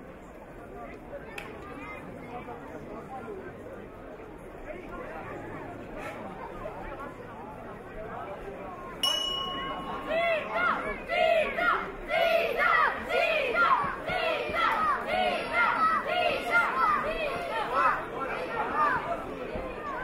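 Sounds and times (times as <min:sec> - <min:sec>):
ring bell struck: 0:09.0 - 0:10.1
spectators shouting: 0:09.7 - 0:20.0.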